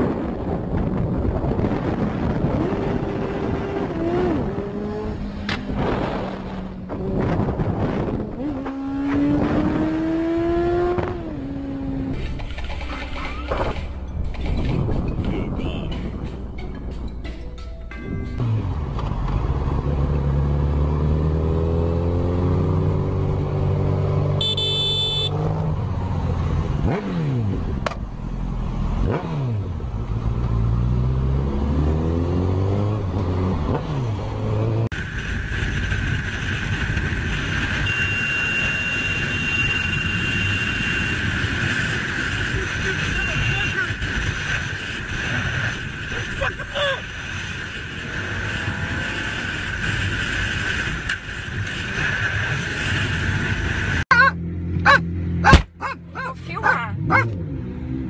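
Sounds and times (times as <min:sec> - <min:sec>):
wind rush: 0:00.0 - 0:12.1, 0:14.2 - 0:17.2
motorcycle engine revving: 0:01.0 - 0:15.0, 0:18.4 - 0:58.0.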